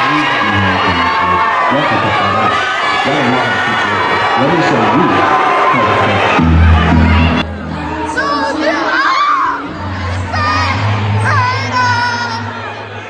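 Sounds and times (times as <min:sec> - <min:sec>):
bass-heavy music with singing: 0:00.0 - 0:13.0
crowd cheering and shouting: 0:00.0 - 0:13.0.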